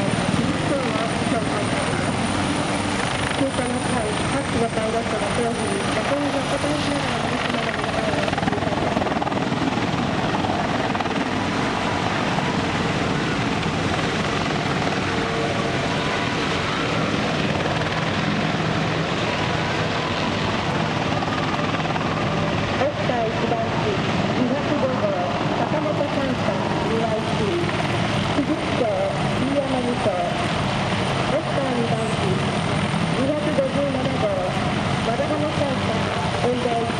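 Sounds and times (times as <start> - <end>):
helicopters flying low past: 0.0 - 36.9.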